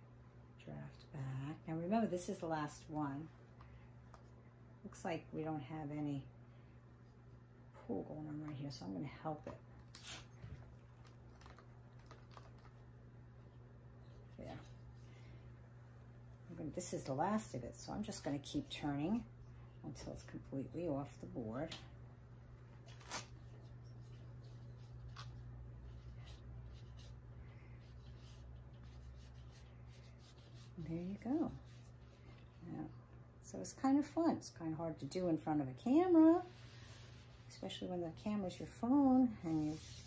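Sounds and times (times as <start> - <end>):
steady low hum: 0.0 - 40.0
wool scratchy rubbing: 23.0 - 32.4.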